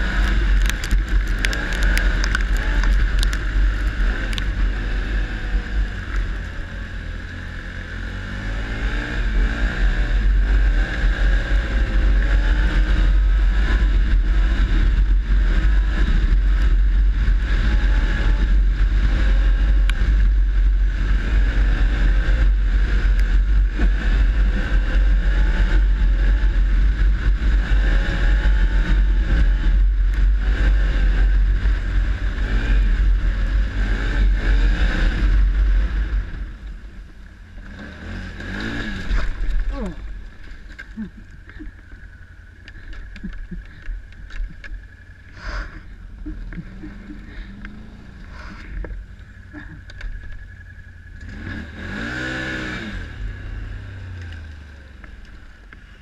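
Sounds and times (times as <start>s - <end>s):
atv engine running: 0.0s - 56.0s
wind rumble on microphone: 0.0s - 56.0s.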